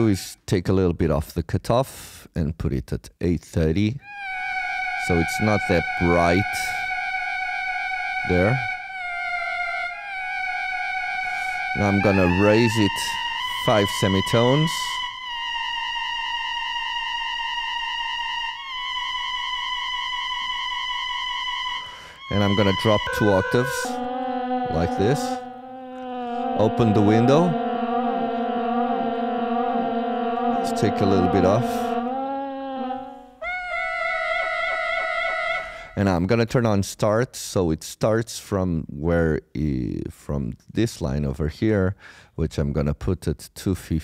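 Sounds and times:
synthesizer drone: 4.0 - 35.9.

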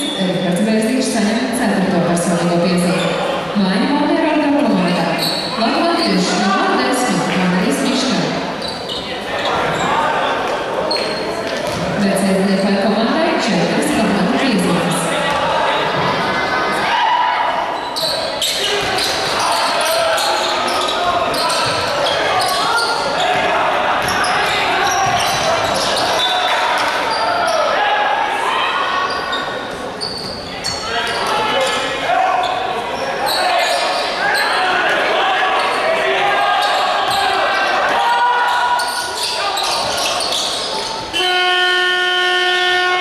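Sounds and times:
players and spectators voices: 0.0 - 43.0
basketball bouncing on court: 11.4 - 12.0, 21.1 - 21.9, 23.2 - 26.1
arena horn tone: 41.1 - 43.0.

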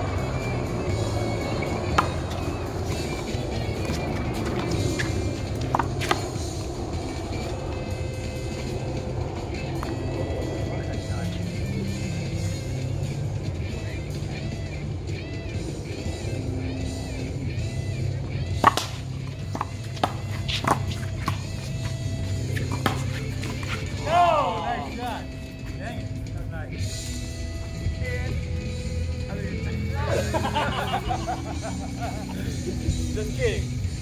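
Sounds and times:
background music: 0.0 - 34.0
racquetball hitting racquets and wall: 1.8 - 6.4, 18.5 - 23.9.

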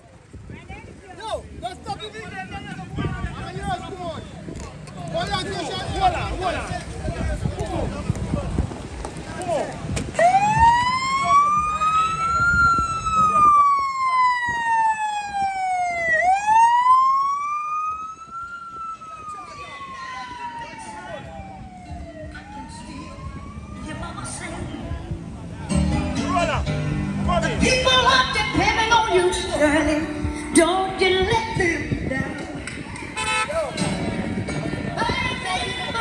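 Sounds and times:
crowd chatter: 0.0 - 16.4, 17.0 - 36.0
police siren wailing: 10.2 - 24.6.

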